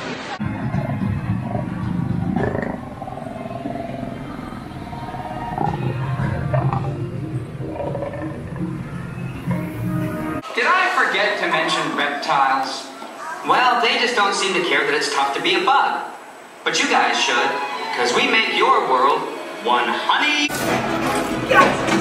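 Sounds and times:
music: 0:00.4 - 0:03.2, 0:04.5 - 0:10.4, 0:19.4 - 0:22.0
big cat roaring and growling: 0:00.4 - 0:09.5.

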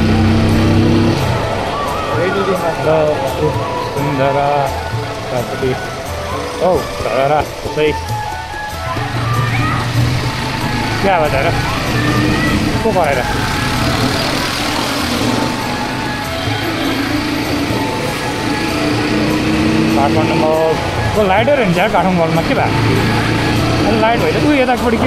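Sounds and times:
motorcycle engine: 0:00.0 - 0:25.0
music: 0:00.0 - 0:25.0
rising and falling calls: 0:00.0 - 0:25.0
voices: 0:00.0 - 0:25.0.

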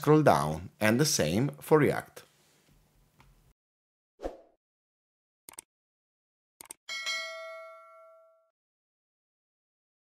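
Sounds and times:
bell ding: 0:06.9 - 0:08.5.

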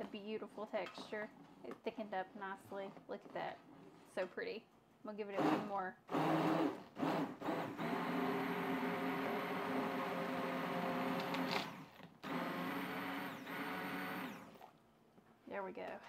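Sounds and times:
stick blender motor whine: 0:05.4 - 0:14.7.

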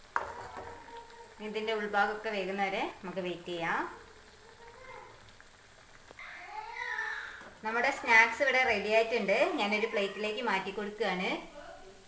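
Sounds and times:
oil sizzling while deep-frying: 0:00.0 - 0:12.0.

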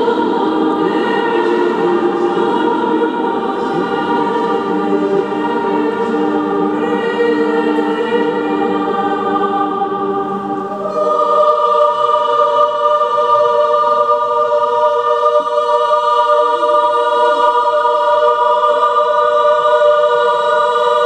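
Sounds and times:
youth choir singing chords: 0:00.0 - 0:21.0.

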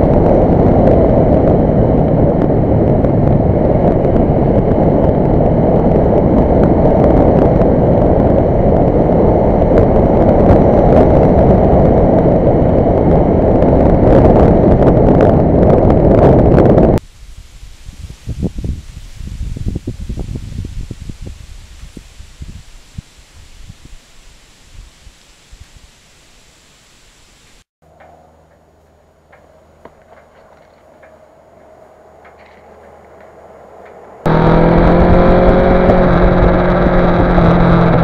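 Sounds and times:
wind rushing over microphone: 0:00.0 - 0:27.7, 0:30.0 - 0:38.0
motorcycle passing: 0:27.9 - 0:38.0.

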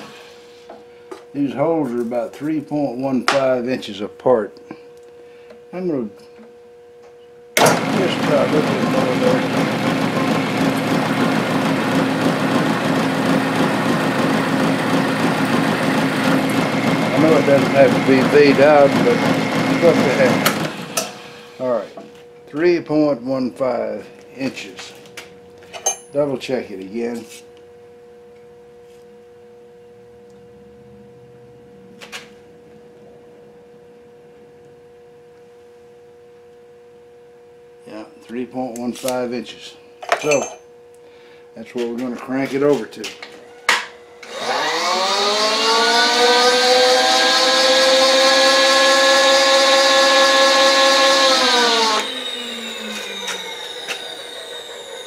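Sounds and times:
steady electrical hum: 0:00.0 - 0:09.4, 0:21.2 - 0:44.3
drill cutting into metal: 0:07.6 - 0:21.7, 0:44.2 - 0:55.0
milling machine motor humming: 0:07.6 - 0:22.7, 0:44.2 - 0:55.0.

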